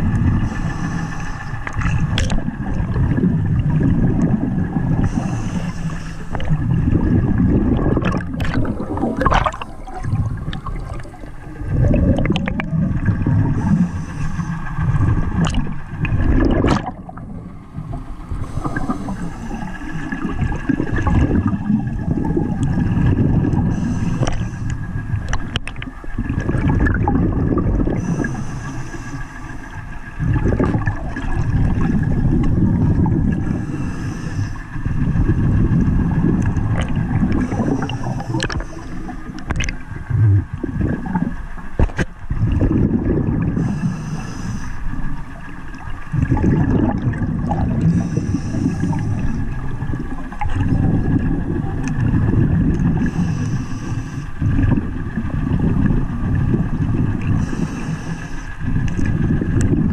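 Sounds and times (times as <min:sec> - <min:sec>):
muffled underwater gurgling: 0:00.0 - 0:59.9.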